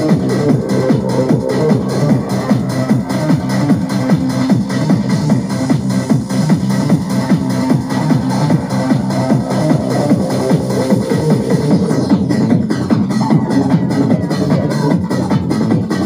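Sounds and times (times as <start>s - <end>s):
hard house techno music: 0.0s - 16.0s.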